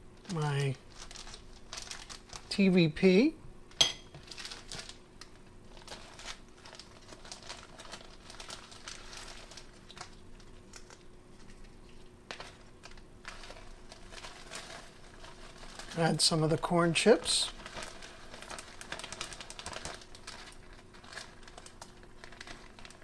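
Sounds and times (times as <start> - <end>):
plastic bag crinkling: 0.1 - 23.0.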